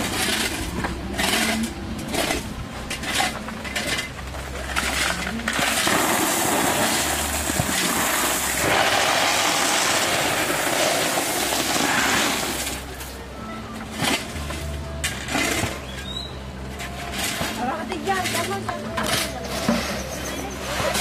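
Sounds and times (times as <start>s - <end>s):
gravel poured from bucket: 5.8s - 12.8s.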